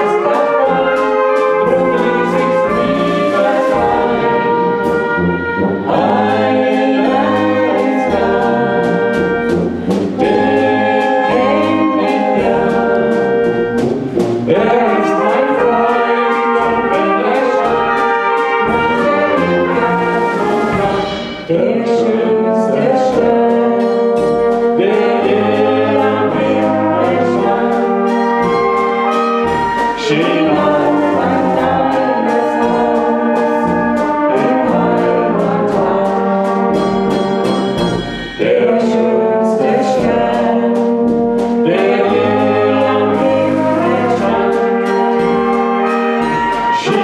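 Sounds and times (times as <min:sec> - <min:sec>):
man and woman singing duet: 0:00.0 - 0:05.0, 0:05.9 - 0:13.9, 0:14.5 - 0:29.1, 0:29.8 - 0:36.8, 0:38.3 - 0:47.0
brass band playing: 0:00.0 - 0:47.0.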